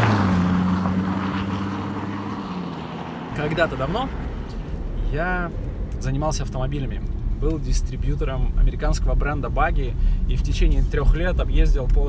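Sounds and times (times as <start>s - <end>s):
car passing on snowy road: 0.0s - 6.3s.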